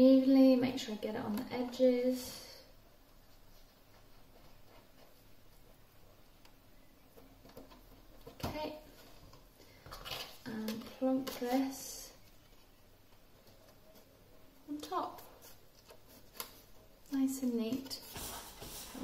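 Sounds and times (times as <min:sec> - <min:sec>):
card and cardboard handling: 0:07.1 - 0:19.0.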